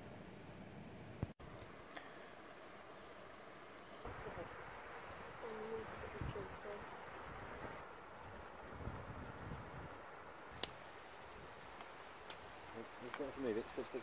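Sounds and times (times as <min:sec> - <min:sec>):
outdoor background hiss: 0:00.0 - 0:14.0.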